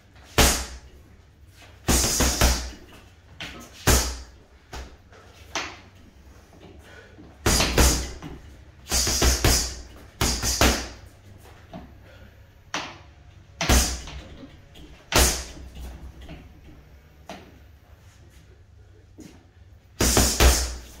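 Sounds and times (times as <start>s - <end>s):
punches thudding on a bag: 1.9s - 2.8s, 7.5s - 8.3s, 15.1s - 15.6s.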